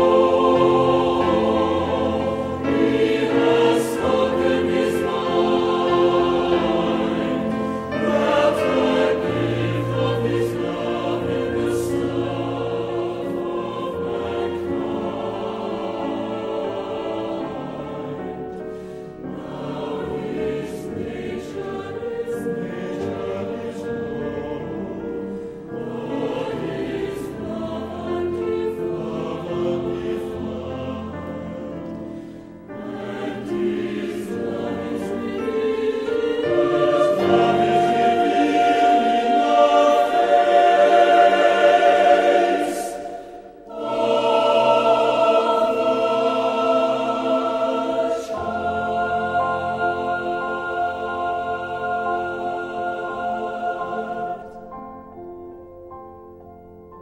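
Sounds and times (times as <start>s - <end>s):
choir singing slow song: 0.0s - 57.0s.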